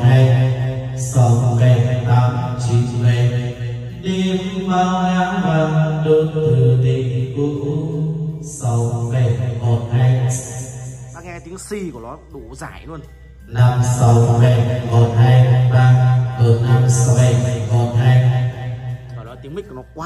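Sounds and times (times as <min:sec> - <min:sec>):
man singing long held notes: 0:00.0 - 0:10.6.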